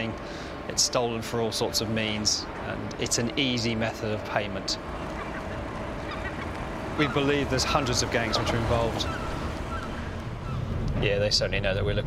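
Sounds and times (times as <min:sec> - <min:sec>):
faint hum of car approaching: 0:00.0 - 0:12.0
outdoor background rumble: 0:00.0 - 0:12.0.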